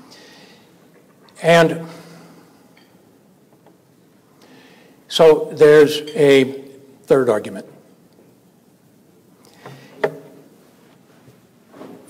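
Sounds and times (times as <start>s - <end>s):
man speaking: 1.4s - 2.0s, 5.1s - 7.8s.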